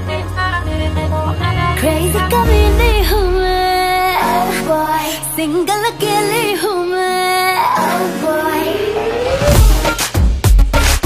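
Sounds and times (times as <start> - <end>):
woman singing pop song: 0.0 - 10.0
backing track: 0.0 - 11.0.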